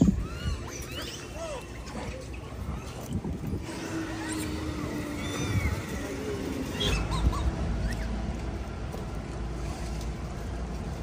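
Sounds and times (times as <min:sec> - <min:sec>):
thin gliding animal calls: 0:00.0 - 0:08.2
outdoor background noise: 0:00.0 - 0:11.0
wavering animal call: 0:03.6 - 0:08.2.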